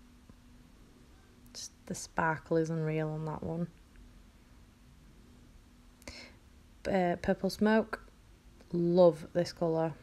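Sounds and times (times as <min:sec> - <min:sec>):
faint steady hum: 0:00.0 - 0:10.0
woman speaking: 0:01.5 - 0:03.8, 0:06.8 - 0:08.1, 0:08.7 - 0:10.0.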